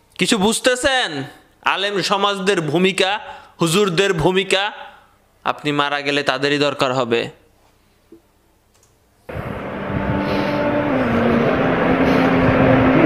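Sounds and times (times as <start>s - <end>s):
loud rushing noise with hum: 9.3s - 13.0s.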